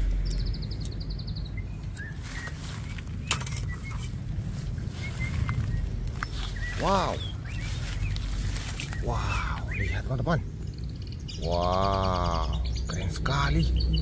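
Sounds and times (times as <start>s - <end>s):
faint bird chirps: 0.0s - 14.0s
steady low rumble: 0.0s - 14.0s.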